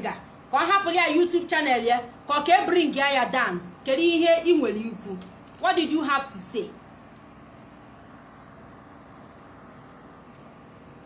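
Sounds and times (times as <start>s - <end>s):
faint hum and hiss: 0.0s - 11.0s.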